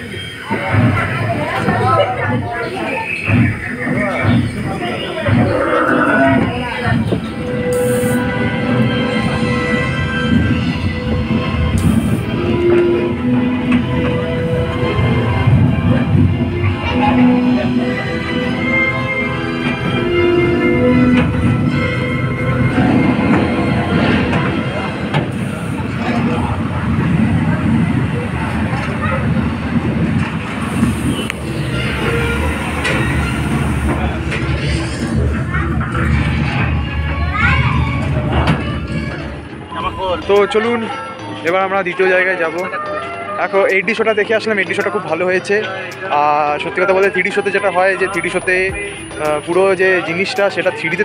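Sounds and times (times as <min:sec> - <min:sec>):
voices: 0:00.0 - 0:10.8, 0:11.4 - 0:51.0
rumbling rushing ride noise: 0:00.0 - 0:42.5, 0:46.2 - 0:51.0
low rumble: 0:48.0 - 0:50.3.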